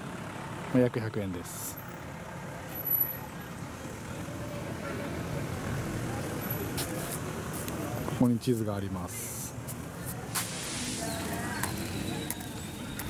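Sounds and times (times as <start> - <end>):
vehicle engine rumbling: 0.0 - 13.0
faint voices: 2.4 - 13.0.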